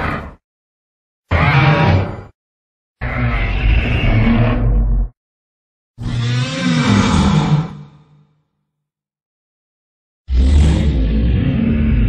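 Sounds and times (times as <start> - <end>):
low rumbling monster growl: 0.0 - 0.4, 6.0 - 8.3, 10.3 - 12.0.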